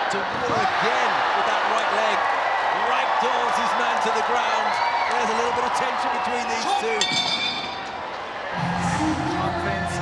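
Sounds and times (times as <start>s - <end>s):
crowd noise: 0.0s - 10.0s
music: 8.6s - 10.0s.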